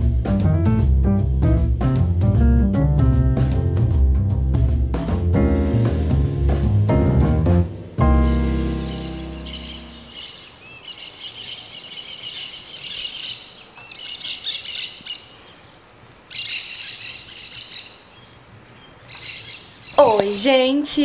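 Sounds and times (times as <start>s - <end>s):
birds chirping and twittering: 8.1s - 20.8s.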